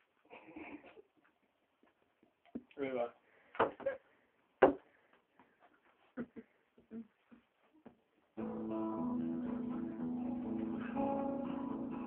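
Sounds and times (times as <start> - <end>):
acoustic guitar strumming chords: 8.4 - 12.0.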